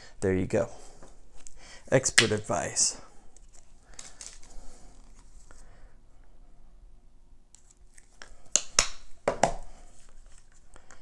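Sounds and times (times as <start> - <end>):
plastic clicks and crackles: 3.9 - 4.6.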